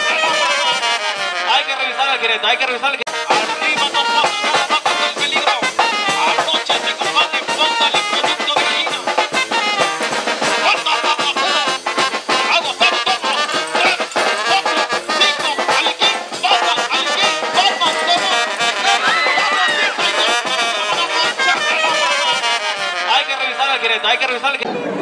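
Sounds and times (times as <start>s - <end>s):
brass band music: 0.0s - 24.5s.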